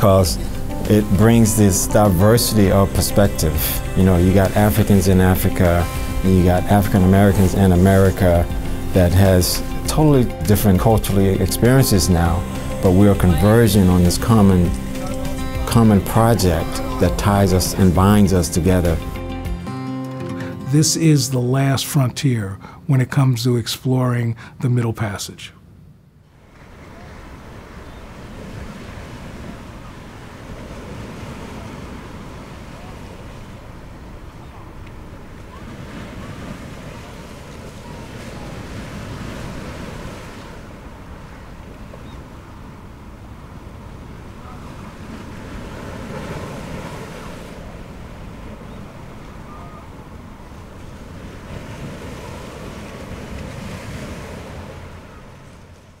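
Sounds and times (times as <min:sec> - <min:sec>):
surf washing against rocky shore: 0:00.0 - 0:19.1, 0:26.4 - 0:56.0.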